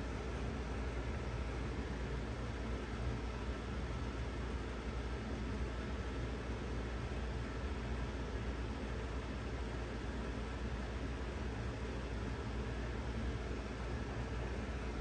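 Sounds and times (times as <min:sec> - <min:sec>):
room hum: 0:00.0 - 0:15.0.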